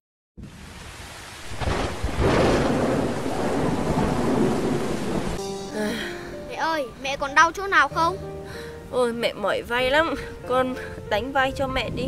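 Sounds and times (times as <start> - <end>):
rain pouring: 0.4 - 6.5
thunder rumbling: 1.4 - 5.4
music: 5.4 - 12.0.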